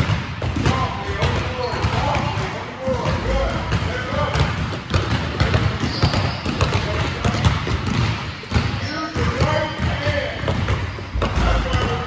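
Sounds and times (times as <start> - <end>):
basketballs bouncing on court: 0.0 - 12.0.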